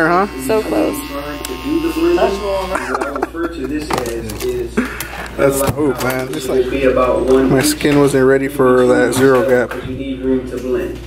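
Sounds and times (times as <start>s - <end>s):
indistinct voices talking: 0.0s - 9.0s.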